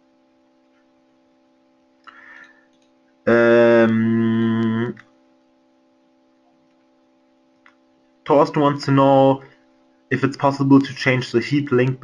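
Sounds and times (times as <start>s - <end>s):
faint steady hum: 0.0s - 12.0s
man saying uhh: 3.3s - 5.0s.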